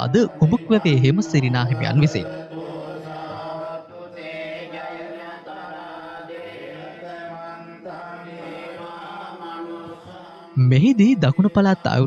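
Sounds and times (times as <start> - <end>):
chanting on long held tones: 0.0 - 12.0.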